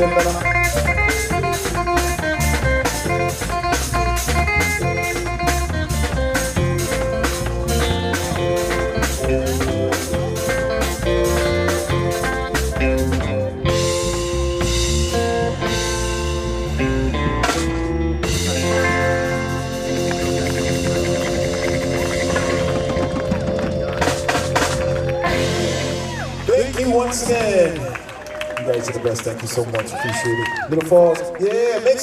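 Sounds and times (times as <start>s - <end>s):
live band playing: 0.0s - 32.0s
drum hits: 17.3s - 27.8s.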